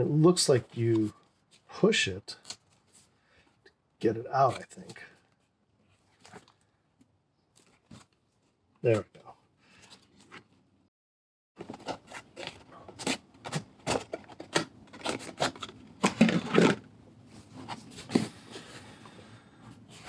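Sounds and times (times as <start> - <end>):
cardboard rustling: 11.6 - 16.8.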